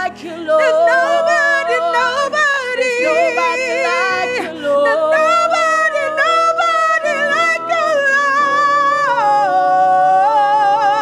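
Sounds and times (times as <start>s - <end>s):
electronic keyboard chords: 0.0s - 11.0s
women singing gospel song: 0.0s - 11.0s.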